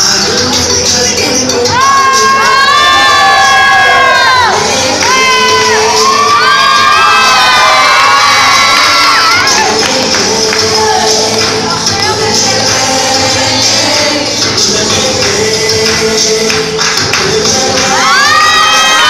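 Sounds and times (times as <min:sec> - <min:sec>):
crowd cheering and shouting: 0:01.5 - 0:14.3, 0:17.4 - 0:19.0.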